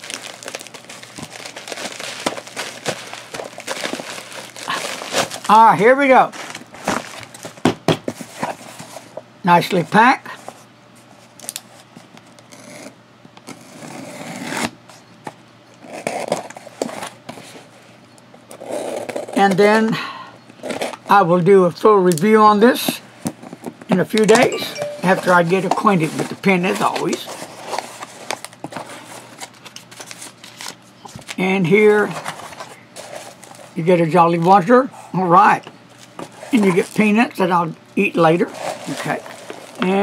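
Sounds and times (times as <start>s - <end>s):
rustling packing material: 0.0s - 9.2s, 32.0s - 33.8s, 38.2s - 40.0s.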